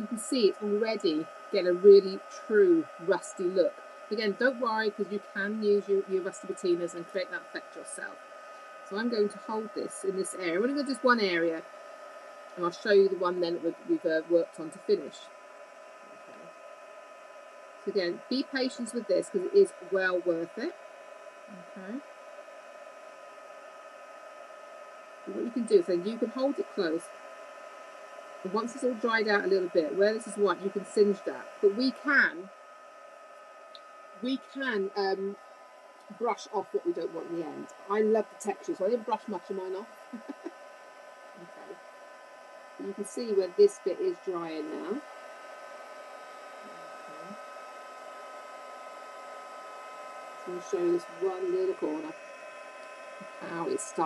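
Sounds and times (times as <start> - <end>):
heat gun fan hissing: 0.0 - 54.0.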